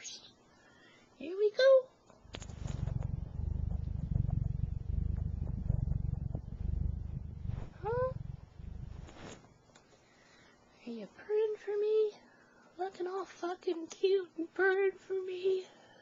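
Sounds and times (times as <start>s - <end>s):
cat purring: 2.2s - 9.6s.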